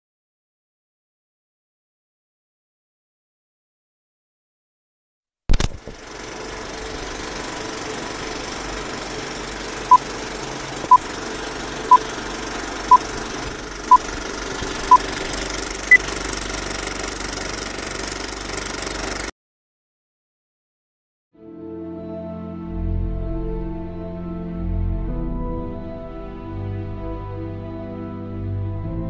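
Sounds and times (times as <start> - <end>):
film projector whirring rattle: 5.5 - 19.3.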